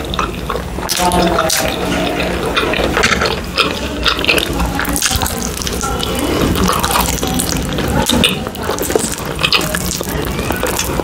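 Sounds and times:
chewing and mouth sounds: 0:00.0 - 0:11.0.

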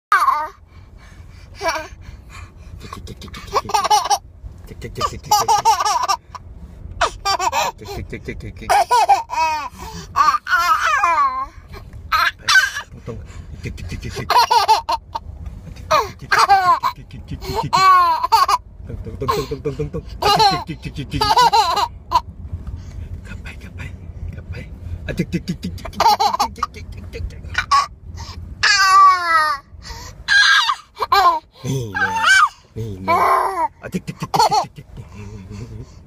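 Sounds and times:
baby laughing: 0:03.3 - 0:04.2, 0:05.0 - 0:06.2, 0:08.7 - 0:11.5, 0:12.1 - 0:12.9, 0:14.1 - 0:15.2, 0:15.9 - 0:18.6, 0:20.2 - 0:22.2, 0:25.6 - 0:26.8, 0:27.5 - 0:27.9, 0:30.3 - 0:34.8.

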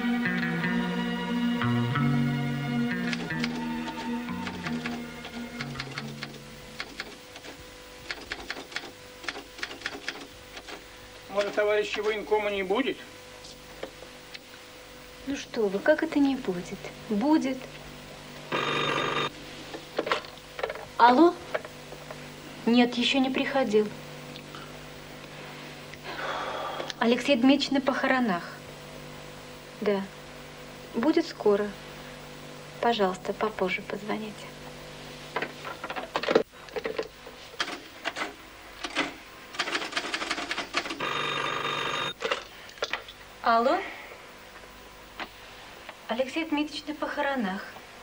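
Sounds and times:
desk telephone bell ringing: 0:18.5 - 0:19.3, 0:41.0 - 0:42.2.

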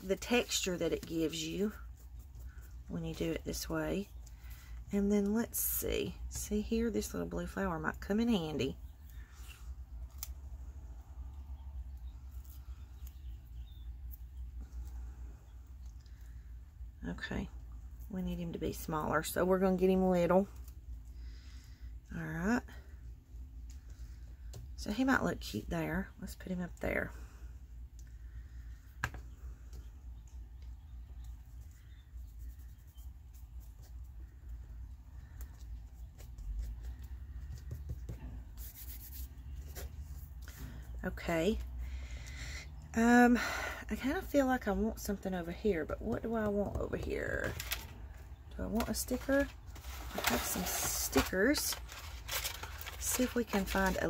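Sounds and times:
paper napkin rustling and tearing: 0:48.8 - 0:54.0.

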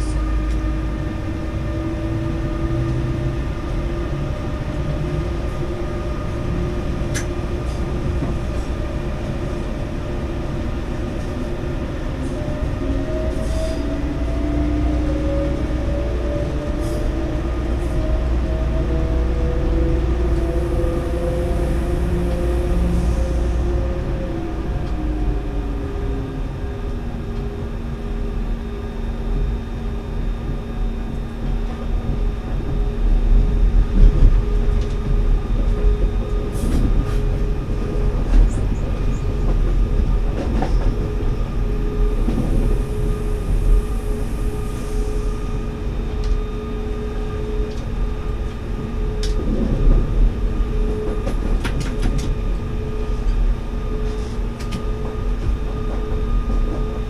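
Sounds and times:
train wheels rumbling on track: 0:00.0 - 0:57.0.

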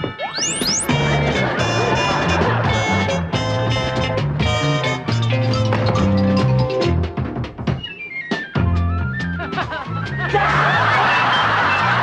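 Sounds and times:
studio audience laughing: 0:09.4 - 0:12.0.

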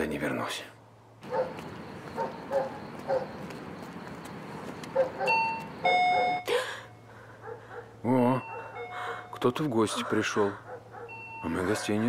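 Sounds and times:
two-note doorbell chime: 0:05.3 - 0:06.5, 0:11.1 - 0:11.6.

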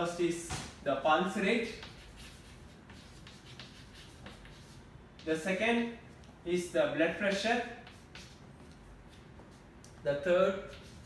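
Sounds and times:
chalk scratching on chalkboard: 0:01.6 - 0:05.5, 0:07.1 - 0:11.0.

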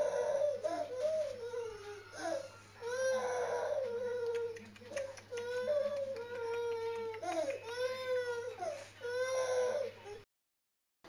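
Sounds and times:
baby crying: 0:00.0 - 0:04.6, 0:05.3 - 0:10.2.

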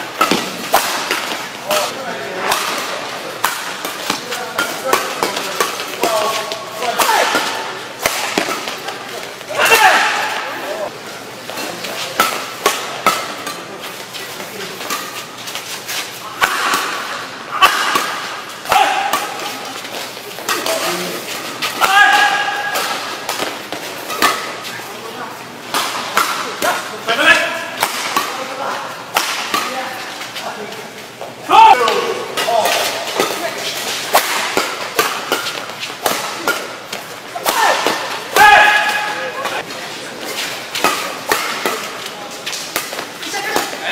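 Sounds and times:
rackets striking shuttlecock: 0:00.2 - 0:10.6, 0:16.4 - 0:24.7, 0:25.7 - 0:26.8, 0:27.8 - 0:29.9, 0:31.7 - 0:39.7, 0:40.8 - 0:43.9.

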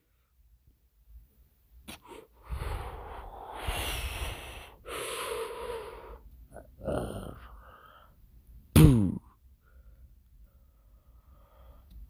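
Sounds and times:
person breathing hard into microphone: 0:01.9 - 0:06.3, 0:09.6 - 0:12.0.

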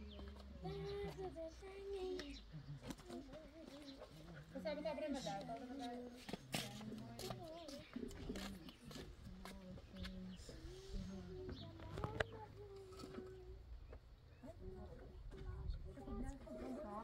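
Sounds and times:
faint voices talking: 0:00.0 - 0:17.0.

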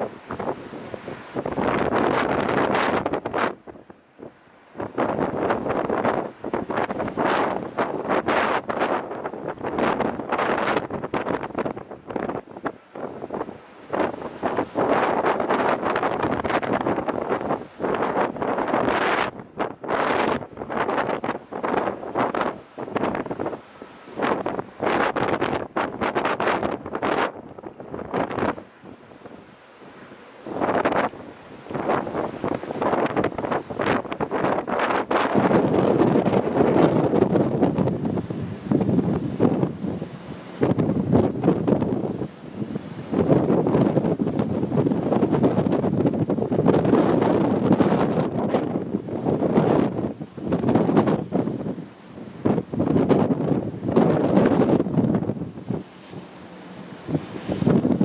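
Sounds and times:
rough sea rushing: 0:00.0 - 0:58.0
wind buffeting microphone: 0:00.0 - 0:58.0.

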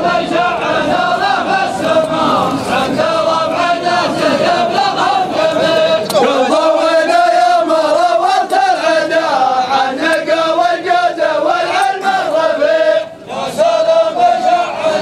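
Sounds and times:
men chanting in unison: 0:00.0 - 0:15.0.

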